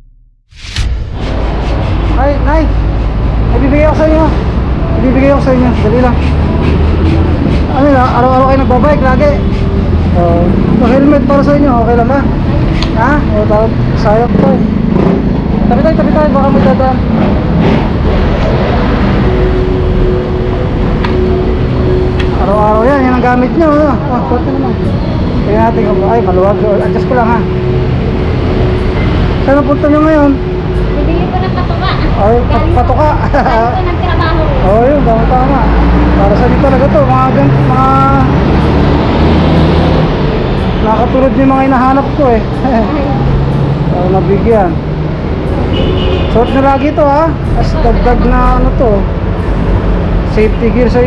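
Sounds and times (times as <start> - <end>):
vehicle engine humming: 0.6 - 51.0.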